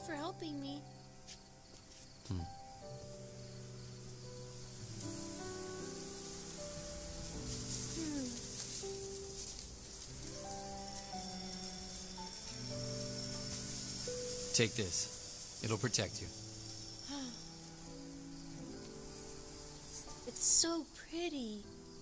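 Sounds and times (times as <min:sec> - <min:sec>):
high shimmering hiss: 0:00.0 - 0:22.0
slow sustained film score: 0:00.0 - 0:22.0.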